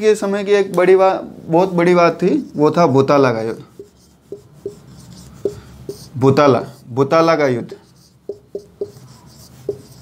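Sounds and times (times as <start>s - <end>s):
marker squeaking on whiteboard: 3.6s - 10.0s.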